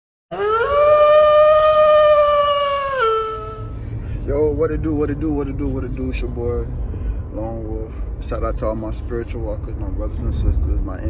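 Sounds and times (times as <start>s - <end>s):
wolf howling: 0.3s - 3.7s.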